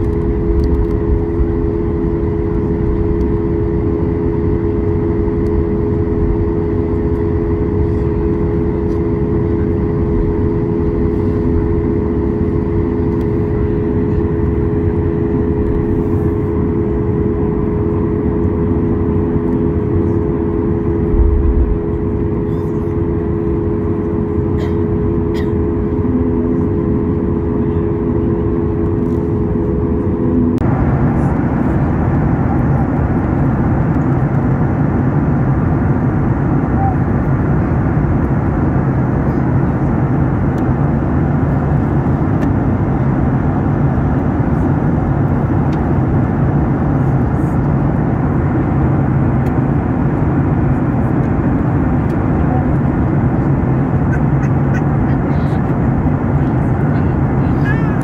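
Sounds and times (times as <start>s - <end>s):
jet engines whining on ground: 0.0s - 58.0s
rush of engines and airflow: 0.0s - 58.0s.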